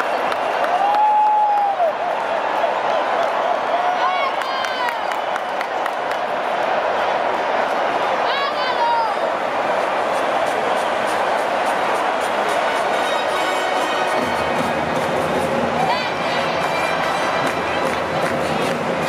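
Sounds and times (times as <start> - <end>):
stadium crowd chatter: 0.0 - 19.0
music over crowd: 6.4 - 19.0.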